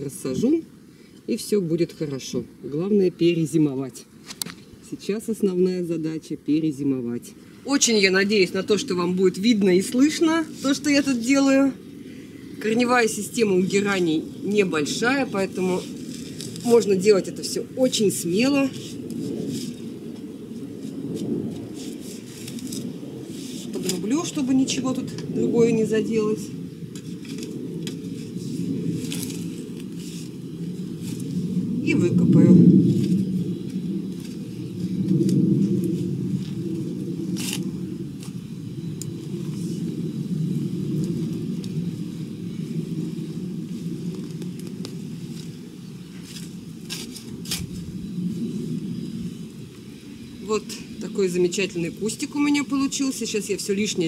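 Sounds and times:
scrapes and rustles of earth: 3.5s - 5.8s, 7.5s - 11.9s, 12.5s - 54.0s
low rumble: 18.9s - 45.6s.

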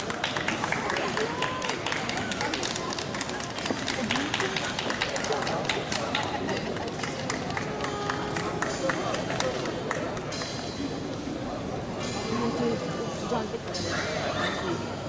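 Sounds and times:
many people talking: 0.0s - 15.0s.

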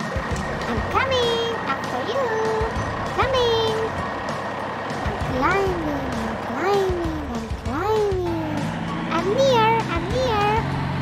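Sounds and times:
person making engine noises: 0.0s - 11.0s.

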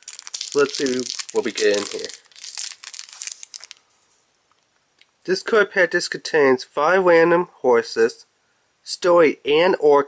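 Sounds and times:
foil wrapper crinkling: 0.0s - 3.8s.

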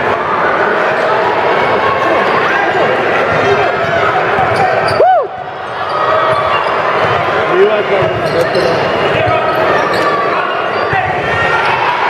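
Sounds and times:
din of spectators' voices: 0.0s - 12.0s
sneakers squeaking: 1.7s - 12.0s.

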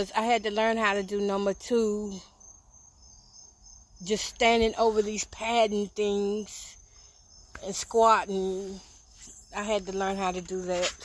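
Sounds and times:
woman's voice: 0.0s - 2.3s, 4.0s - 6.8s, 7.6s - 11.0s
high-pitched insect trilling: 0.0s - 11.0s.

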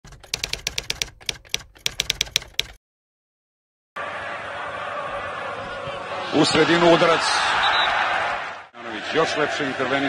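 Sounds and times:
typewriter key clacks: 0.1s - 2.8s.

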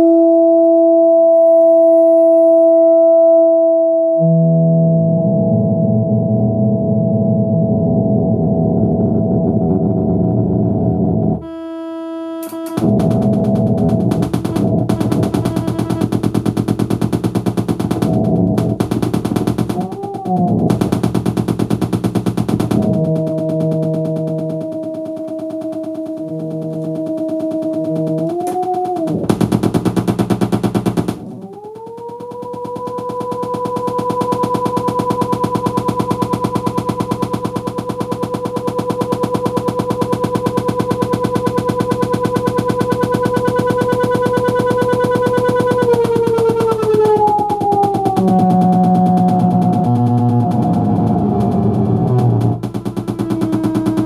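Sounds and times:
droning electronic tone bending in pitch: 0.0s - 54.0s
pulsing low notes: 4.0s - 11.8s, 12.5s - 54.0s
loud electronic noise: 12.4s - 54.0s.

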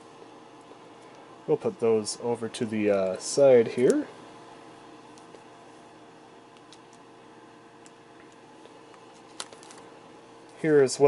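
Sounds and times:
faint steady hum: 0.0s - 11.0s
foil pack crinkle and click: 7.8s - 9.9s.

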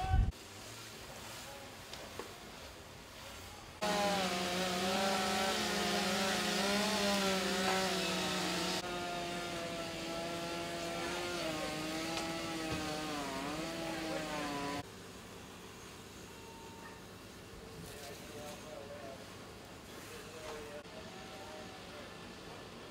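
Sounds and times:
chainsaw cutting: 3.8s - 14.8s.

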